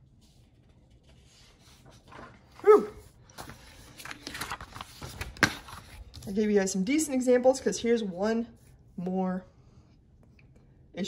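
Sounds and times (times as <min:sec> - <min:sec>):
paper rustling: 0:00.0 - 0:06.5.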